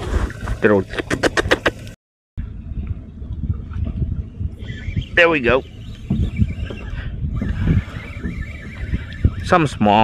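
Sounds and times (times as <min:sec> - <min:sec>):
wind buffeting microphone: 0:02.4 - 0:10.0.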